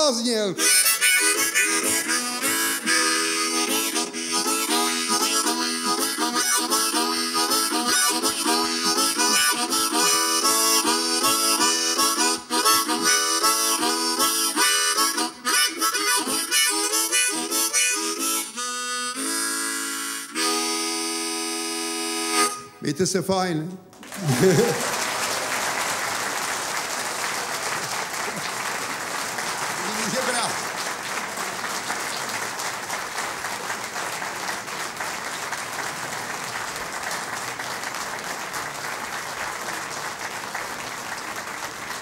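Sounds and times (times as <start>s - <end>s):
solo harmonica: 0.3s - 22.9s.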